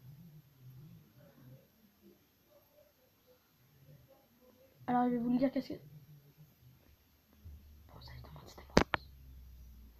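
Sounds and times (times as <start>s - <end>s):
faint whispering: 7.8s - 9.5s.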